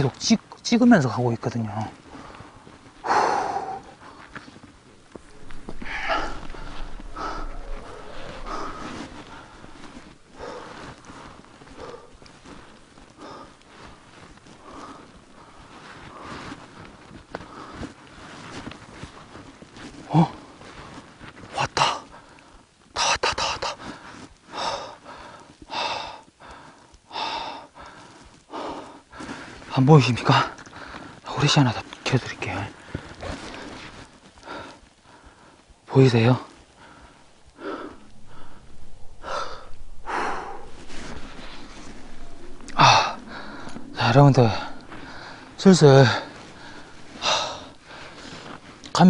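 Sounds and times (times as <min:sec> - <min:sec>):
person breathing: 0:02.1 - 0:16.6, 0:36.5 - 0:49.0.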